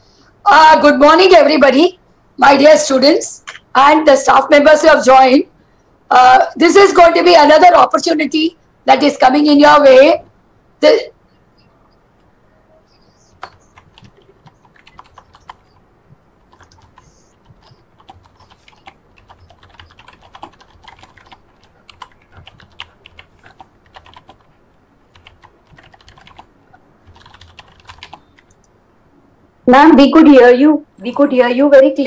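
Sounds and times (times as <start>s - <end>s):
typing on computer keyboard: 13.2s - 15.8s, 16.4s - 24.5s, 25.1s - 28.7s.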